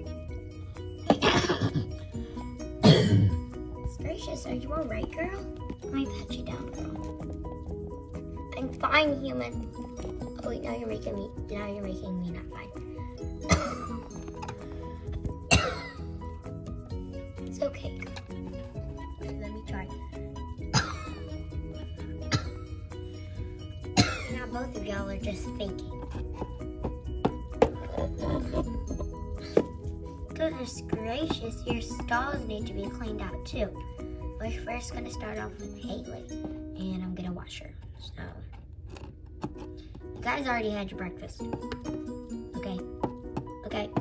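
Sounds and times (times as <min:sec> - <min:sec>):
background music: 0:00.0 - 0:44.0
person coughing: 0:01.1 - 0:02.1, 0:02.8 - 0:03.5, 0:13.4 - 0:14.6, 0:15.4 - 0:16.2, 0:20.6 - 0:21.4, 0:22.2 - 0:22.8, 0:23.9 - 0:24.4, 0:27.7 - 0:29.8.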